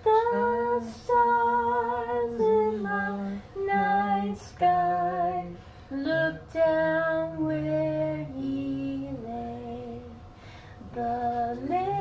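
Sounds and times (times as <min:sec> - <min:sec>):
woman singing unaccompanied: 0:00.0 - 0:12.0.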